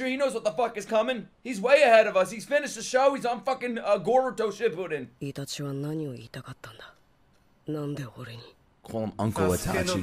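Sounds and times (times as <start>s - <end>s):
man speaking: 0.0s - 5.1s, 8.8s - 10.0s.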